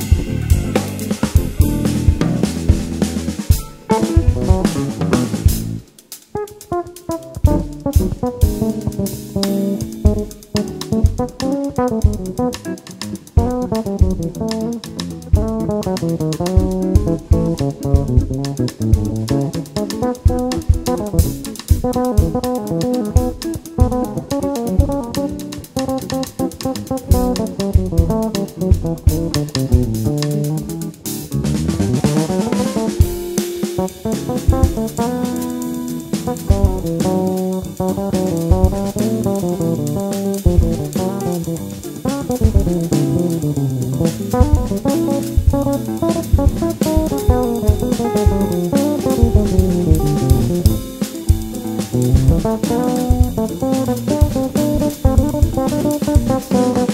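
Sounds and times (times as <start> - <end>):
bass guitar: 0.0 - 56.9
drum kit: 0.0 - 56.9
electric guitar: 0.0 - 56.9
piano: 0.0 - 56.9.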